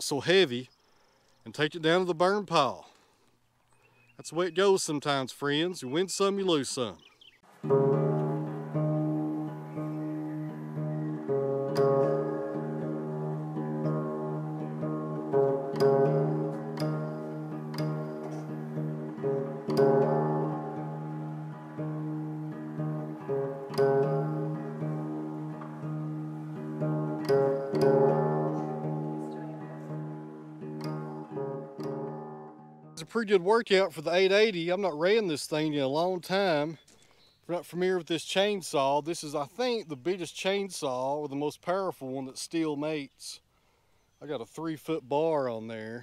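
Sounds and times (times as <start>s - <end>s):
plucked guitar tune: 7.5s - 33.1s.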